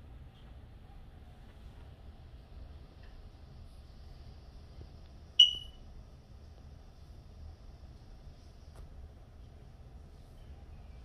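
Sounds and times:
short high-pitched ding: 5.4 - 5.8.

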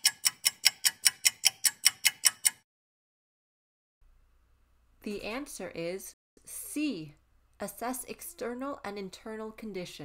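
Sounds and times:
clock ticking: 0.0 - 2.6.

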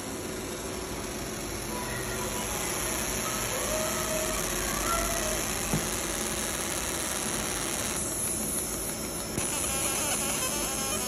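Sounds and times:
laser marking machine hissing: 0.0 - 11.0.

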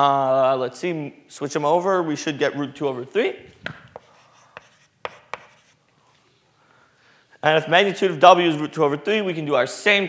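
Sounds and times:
chalk tapping on blackboard: 3.7 - 5.8
chalk scratching: 3.7 - 5.9.

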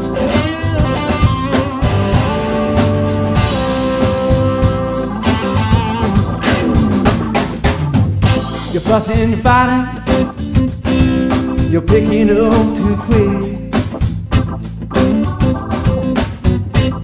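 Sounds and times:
keyboard chords: 0.0 - 17.0
wavering electric guitar notes: 0.0 - 17.0
drum hits: 0.8 - 17.0.

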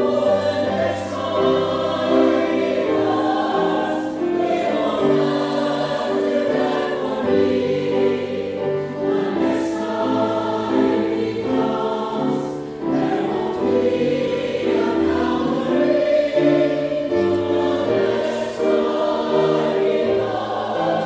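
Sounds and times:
choir singing in harmony: 0.0 - 21.0
piano accompaniment: 0.0 - 21.0.

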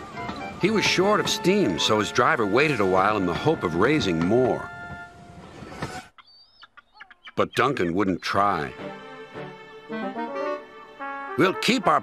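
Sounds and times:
bird chirping and clucking: 5.4 - 8.2.

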